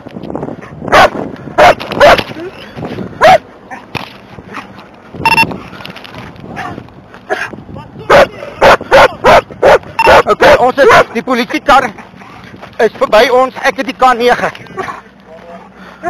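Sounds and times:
dog barking: 0.9s - 2.2s, 3.2s - 3.4s, 8.1s - 11.2s
short electronic beep: 5.2s - 5.5s.

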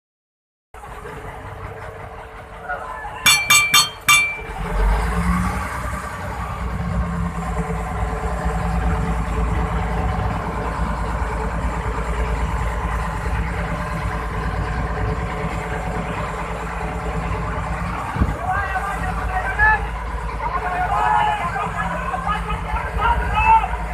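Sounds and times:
boat engine humming: 0.8s - 23.9s.

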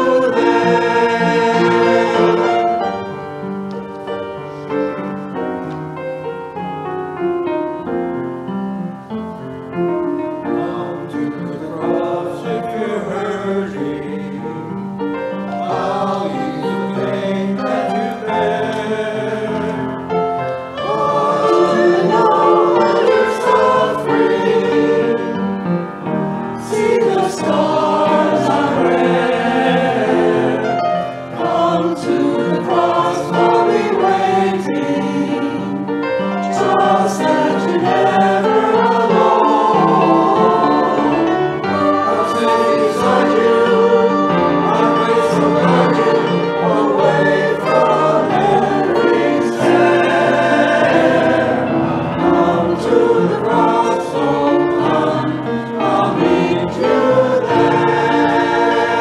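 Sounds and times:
mixed choir singing: 0.0s - 5.4s, 9.9s - 59.0s
piano accompaniment: 0.0s - 59.0s.

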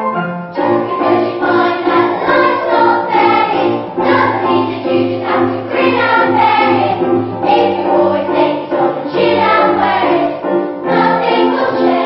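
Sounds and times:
instrumental accompaniment: 0.0s - 12.0s
children singing together: 0.5s - 12.0s.

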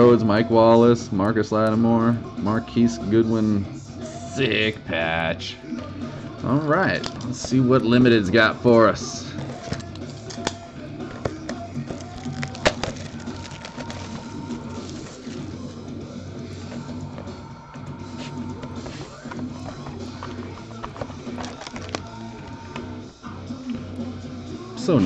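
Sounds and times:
background music: 0.0s - 25.0s
box handling clicks and rustles: 9.4s - 15.5s, 18.2s - 22.9s.

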